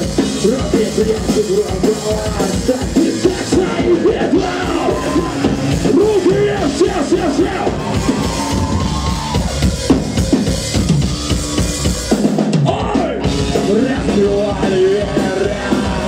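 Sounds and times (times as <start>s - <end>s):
drum kit: 0.0s - 16.0s
loud guitars: 0.0s - 16.0s
rock band playing live: 0.0s - 16.0s.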